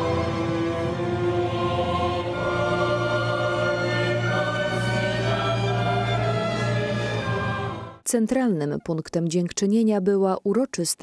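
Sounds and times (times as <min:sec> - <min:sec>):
choir and orchestra performing: 0:00.0 - 0:08.0.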